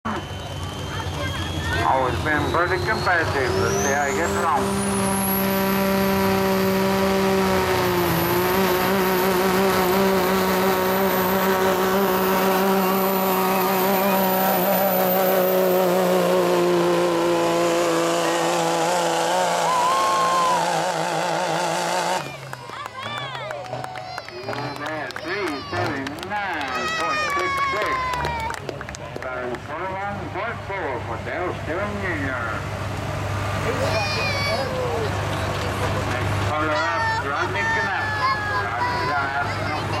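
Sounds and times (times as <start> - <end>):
turbocharger whistle: 0.0 - 24.9
diesel truck engine at full throttle: 0.0 - 40.0.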